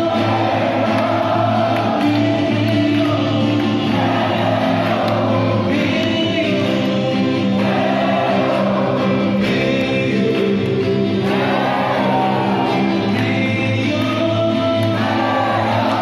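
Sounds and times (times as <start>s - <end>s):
acoustic guitar: 0.0s - 16.0s
men singing together: 0.0s - 16.0s.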